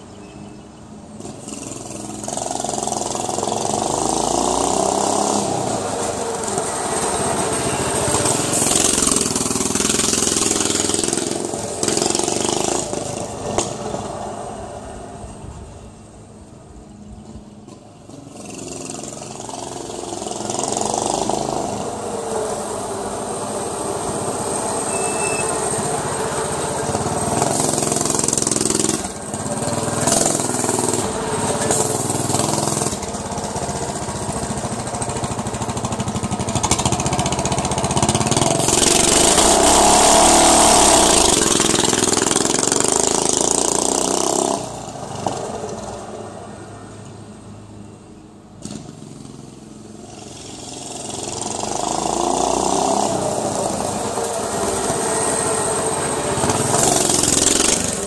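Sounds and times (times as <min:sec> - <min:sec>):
small motorbike engine revving: 0:01.1 - 0:14.1, 0:18.1 - 0:45.4, 0:50.1 - 0:58.0.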